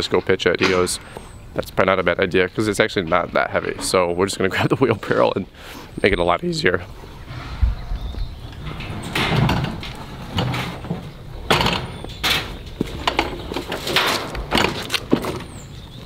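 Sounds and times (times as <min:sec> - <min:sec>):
footsteps on trailer deck: 0:06.9 - 0:16.0
wheelbarrow rattling on metal ramp: 0:08.4 - 0:15.8.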